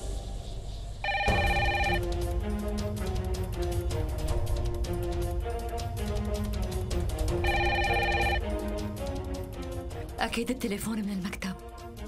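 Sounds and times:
telephone ringing: 0:01.0 - 0:02.2, 0:07.4 - 0:08.5.

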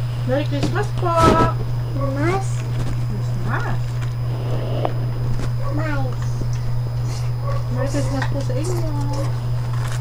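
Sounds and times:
steady low hum: 0:01.4 - 0:09.8.

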